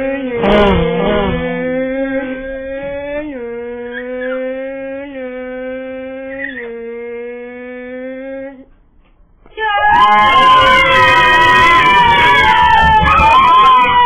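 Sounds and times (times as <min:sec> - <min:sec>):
voice holding a wailing note: 0:00.0 - 0:08.7.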